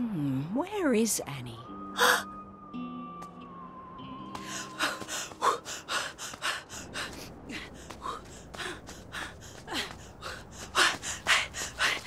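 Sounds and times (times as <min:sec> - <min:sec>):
woman panting: 0:04.4 - 0:12.0.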